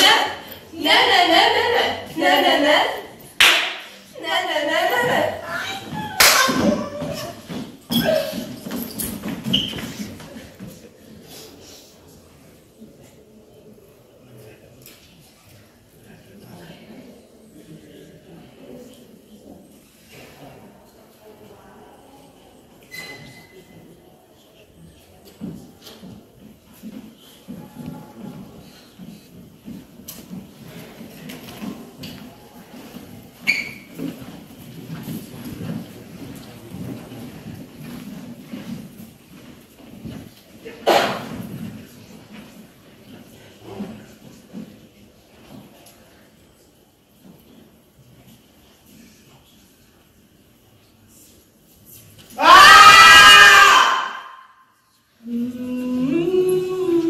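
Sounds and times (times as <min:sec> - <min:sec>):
footsteps on stage floor: 0:04.9 - 0:11.5, 0:25.0 - 0:50.1
woman screaming: 0:52.4 - 0:54.5.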